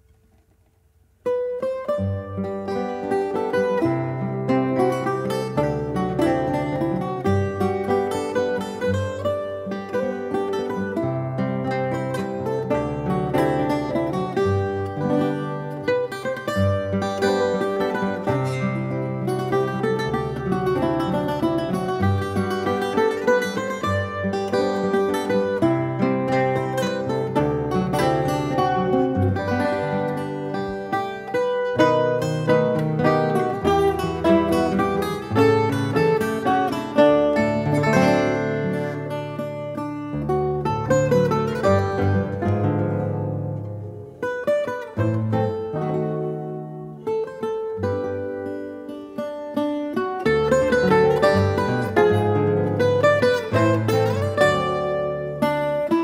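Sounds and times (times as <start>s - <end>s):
plucked guitar duet: 0.0s - 56.0s.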